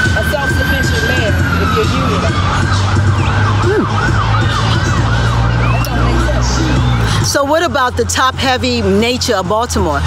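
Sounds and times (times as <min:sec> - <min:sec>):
ambulance siren yelping: 0:00.0 - 0:10.0.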